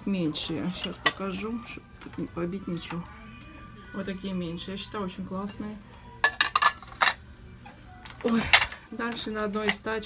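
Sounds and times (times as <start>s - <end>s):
china plates clinking: 6.2s - 7.2s, 8.1s - 10.0s.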